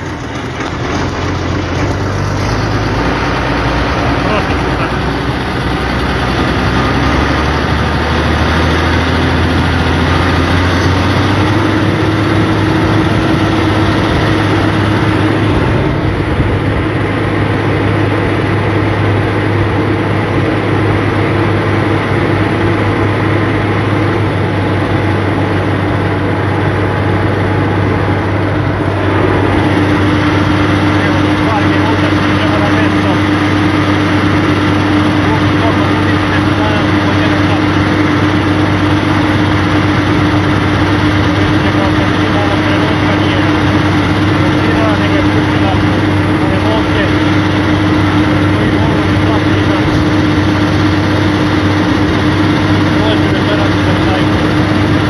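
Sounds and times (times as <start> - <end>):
tractor diesel engine drone: 0.0 - 55.0.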